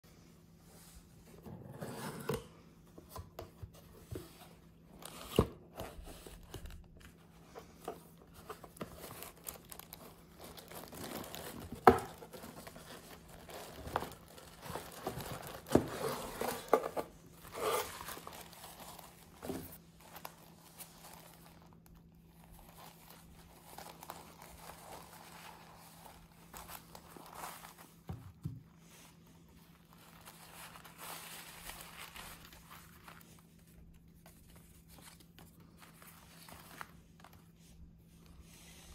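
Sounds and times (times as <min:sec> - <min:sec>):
paper rustling and crinkling: 0:03.1 - 0:38.9.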